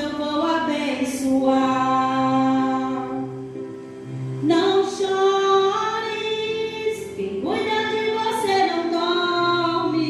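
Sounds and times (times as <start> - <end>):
woman singing into a microphone: 0.0 - 3.5, 4.4 - 10.0
backing track of sustained chords: 0.0 - 10.0.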